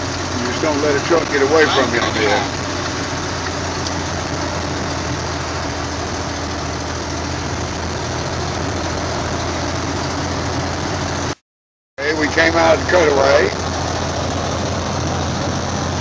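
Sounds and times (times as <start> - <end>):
truck engine and road drone: 0.0 - 11.4, 12.0 - 16.0.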